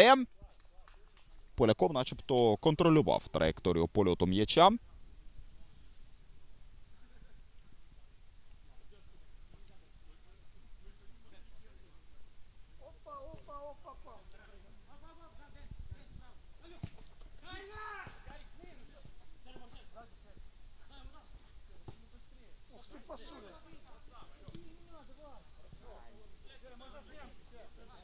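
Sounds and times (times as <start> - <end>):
players calling and shouting: 12.6 - 15.6, 16.2 - 27.9.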